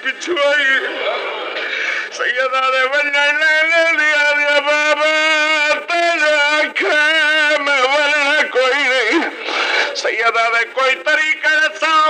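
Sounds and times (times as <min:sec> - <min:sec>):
man chanting mourning elegy: 0:02.1 - 0:12.0.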